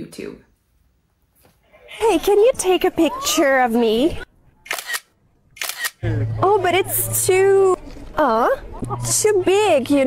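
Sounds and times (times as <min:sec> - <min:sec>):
camera shutter snaps: 0:04.6 - 0:06.0.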